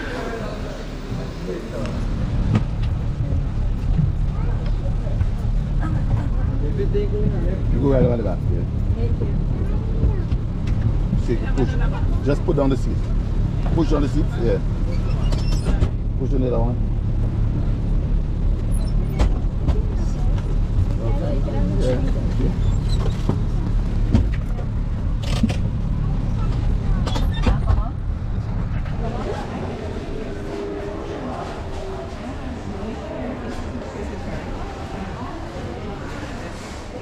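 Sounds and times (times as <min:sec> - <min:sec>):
bus engine rumbling: 0:00.0 - 0:37.0.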